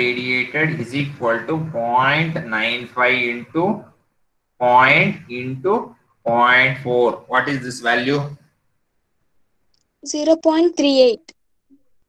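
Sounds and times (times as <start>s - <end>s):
man speaking: 0.0s - 4.0s, 4.6s - 8.4s.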